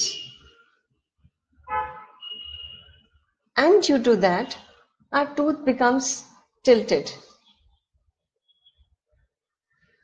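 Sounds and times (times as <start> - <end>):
vehicle horn honking: 1.6 - 3.0.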